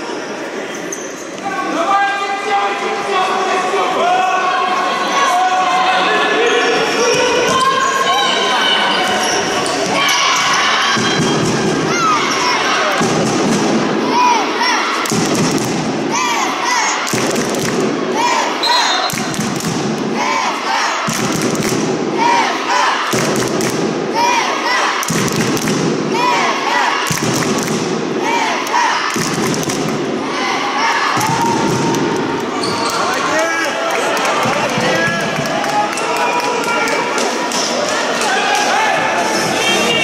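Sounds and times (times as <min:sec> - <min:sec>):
supporters chanting: 0:03.9 - 0:40.0.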